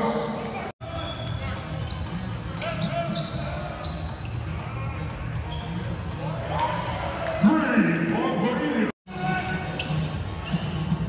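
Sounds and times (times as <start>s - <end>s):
shoe squeaks: 0.9s - 4.6s, 5.4s - 6.1s, 9.7s - 11.0s
play-by-play commentary: 7.4s - 9.8s.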